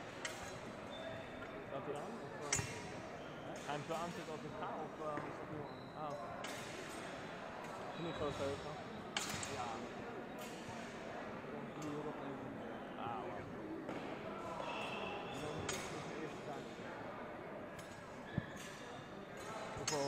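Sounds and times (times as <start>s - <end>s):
crowd chatter in hall: 0.0s - 20.0s.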